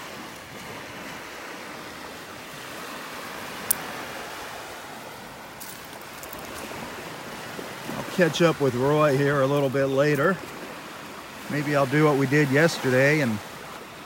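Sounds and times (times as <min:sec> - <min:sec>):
gentle surf on beach: 0:00.0 - 0:14.0.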